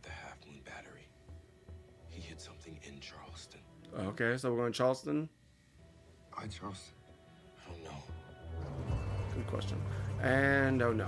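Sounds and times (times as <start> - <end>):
hushed whispered dialogue: 0.0 - 1.3, 2.0 - 4.3
faint background music: 0.0 - 11.0.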